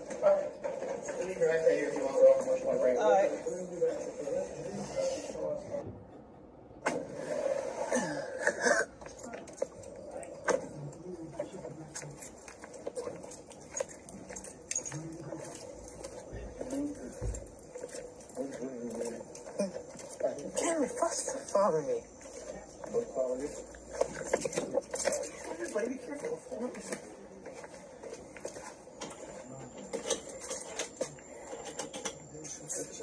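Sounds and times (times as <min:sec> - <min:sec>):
muffled voices: 0:00.0 - 0:06.1, 0:06.8 - 0:33.0.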